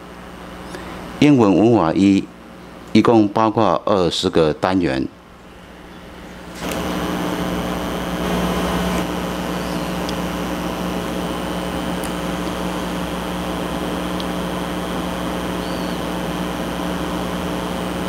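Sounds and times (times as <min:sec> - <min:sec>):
steady background hum: 0:00.0 - 0:18.0.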